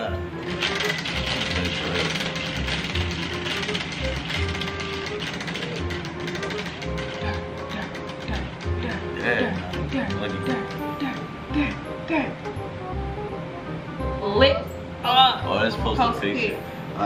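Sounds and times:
prize wheel clicking: 0:00.0 - 0:11.8.

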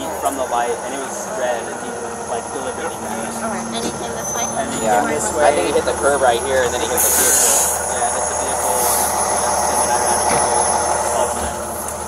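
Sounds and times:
engine low rumble: 0:00.0 - 0:12.0.

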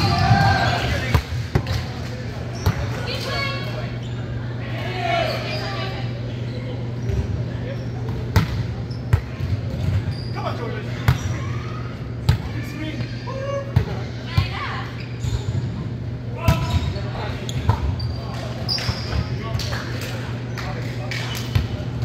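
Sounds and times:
balls thudding on gym floor: 0:08.1 - 0:10.1.

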